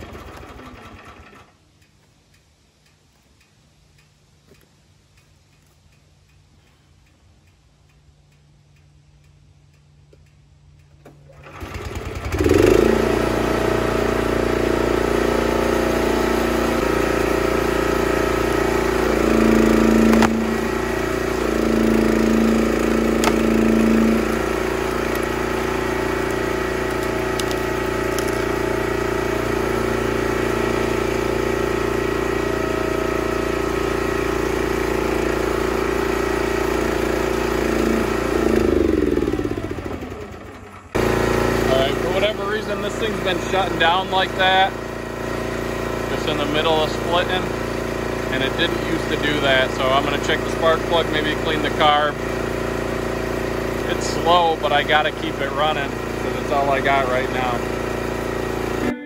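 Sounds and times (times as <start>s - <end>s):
small gas engine running: 0.0s - 1.6s, 11.0s - 59.0s
person talking: 53.9s - 57.6s, 58.8s - 59.0s.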